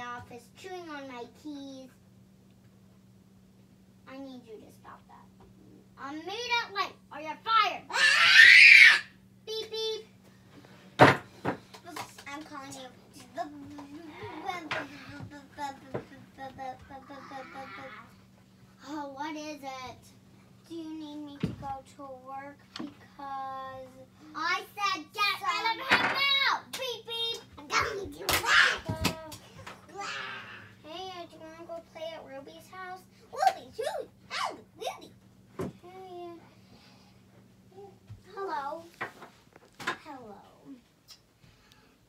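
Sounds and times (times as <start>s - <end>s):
steady low hum: 0.0s - 42.0s
young children's voices: 11.9s - 18.2s, 20.7s - 35.1s.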